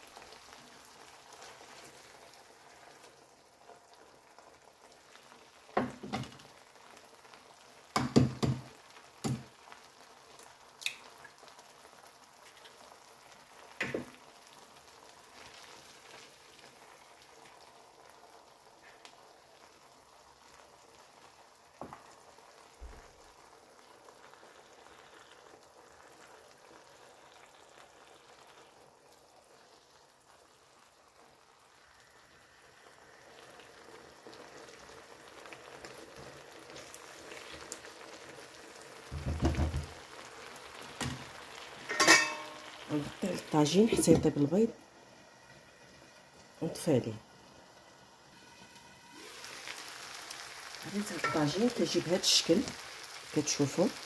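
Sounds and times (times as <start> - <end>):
sauce sizzling and bubbling: 0.0 - 54.0.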